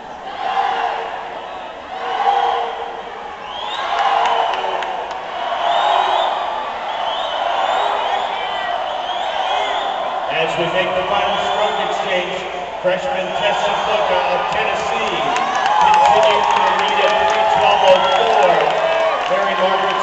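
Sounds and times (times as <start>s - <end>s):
crowd cheering and shouting: 0.0s - 20.0s.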